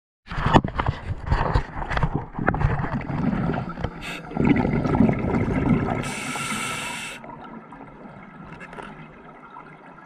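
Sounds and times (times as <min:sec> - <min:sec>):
underwater clicks and knocks: 0:00.3 - 0:05.1, 0:08.4 - 0:09.2
bubbling: 0:02.0 - 0:10.0.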